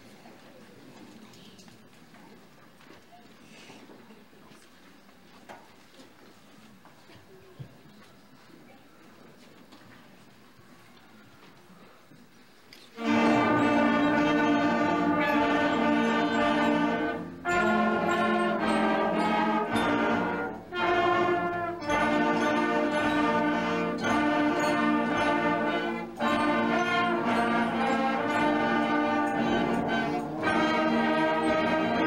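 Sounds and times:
instrumental ensemble playing chords: 13.0 - 32.0.

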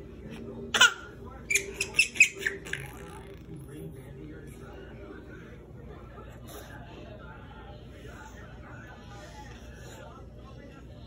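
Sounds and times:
baby laughing: 0.7 - 3.2.

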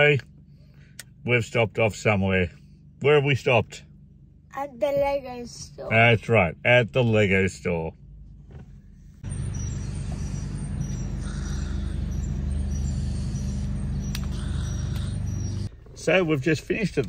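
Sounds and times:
vehicle engine running: 0.0 - 17.0.

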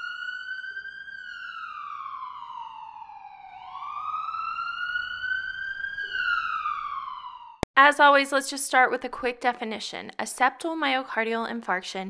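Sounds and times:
emergency siren wailing: 0.0 - 7.7.

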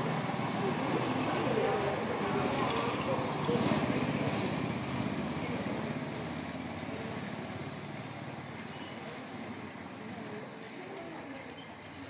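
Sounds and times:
distant voices: 0.0 - 12.0
vehicle traffic: 0.0 - 12.0.

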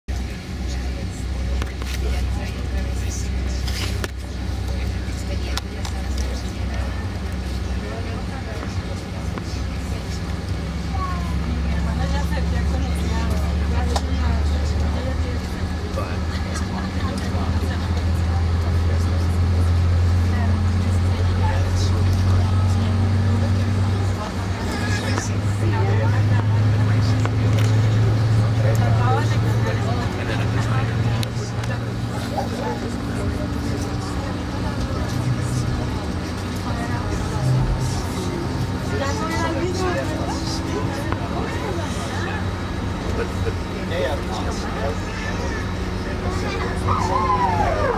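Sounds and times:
jet engines droning in cabin: 0.1 - 47.9.

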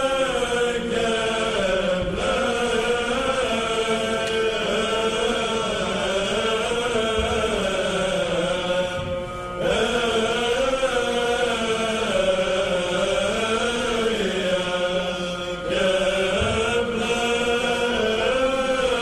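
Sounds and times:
male choir chanting: 0.0 - 19.0.

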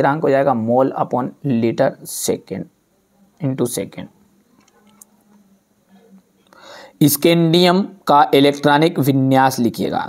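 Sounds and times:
faint steady hum: 0.0 - 10.0
soft intake of breath: 6.5 - 7.0.

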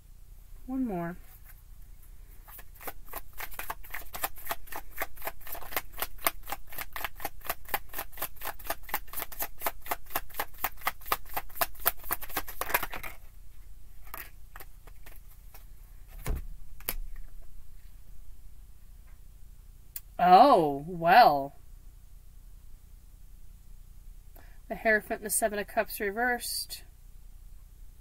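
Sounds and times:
cards being shuffled: 2.4 - 13.3, 14.0 - 17.4.

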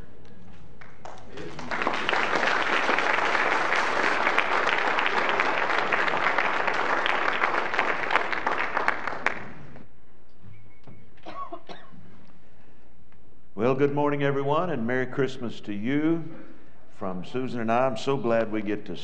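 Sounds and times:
congregation applauding: 0.8 - 9.8.

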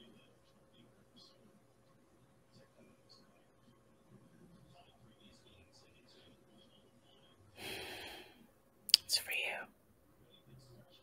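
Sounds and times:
breathy exhale: 7.6 - 8.4
person whispering: 7.6 - 9.7.

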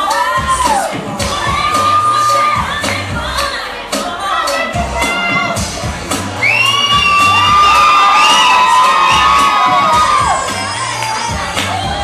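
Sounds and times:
audience cheering and whooping: 0.0 - 3.0, 6.4 - 12.0
loud stage dance music: 0.0 - 12.0.

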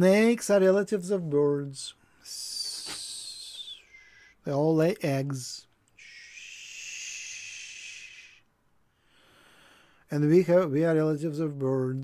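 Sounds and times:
man hissing through teeth: 2.4 - 4.3, 6.0 - 8.5.

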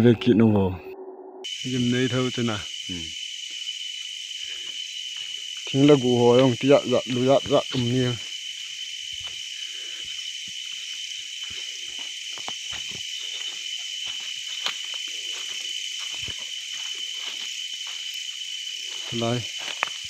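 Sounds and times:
insects trilling: 1.4 - 20.0
rustling leaves and snapping twigs: 4.4 - 20.0.

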